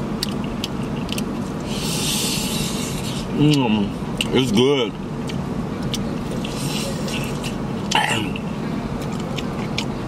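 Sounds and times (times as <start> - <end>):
steady low rumble: 0.0 - 10.0
chewing with mouth clicks: 0.2 - 4.4, 5.2 - 8.4, 9.0 - 9.9.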